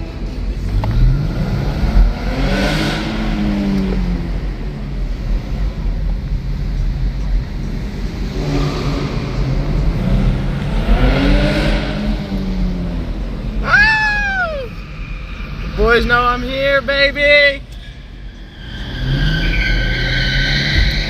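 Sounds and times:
car engine accelerating: 0.0 - 21.0.

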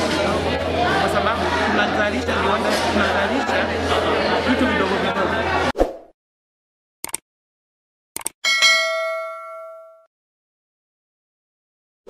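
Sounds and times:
quick clicks: 7.0 - 7.2, 8.2 - 8.4
bright bell ding: 8.4 - 10.1.

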